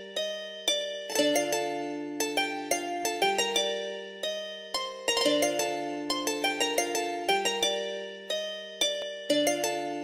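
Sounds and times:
plucked string melody loop: 0:00.0 - 0:10.0.

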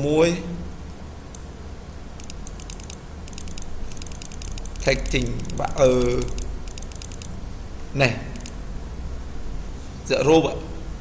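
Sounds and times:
steady low hum: 0:00.0 - 0:11.0
computer keyboard keys clicking: 0:02.2 - 0:07.3, 0:08.4 - 0:08.6.

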